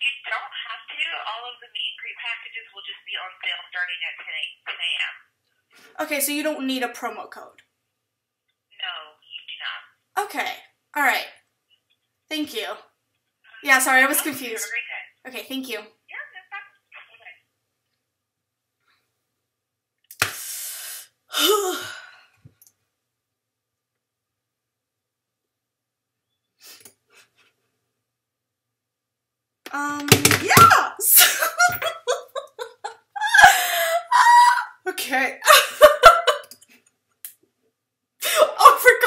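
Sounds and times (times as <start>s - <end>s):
voice over a telephone: 0.0s - 5.3s, 8.8s - 10.3s, 13.5s - 17.5s
woman laughing: 31.0s - 36.6s
woman's high-pitched vocal outburst: 34.0s - 34.9s.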